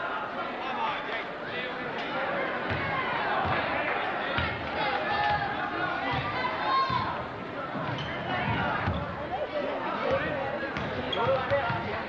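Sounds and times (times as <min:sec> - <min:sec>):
crowd and players' voices: 0:00.0 - 0:12.0.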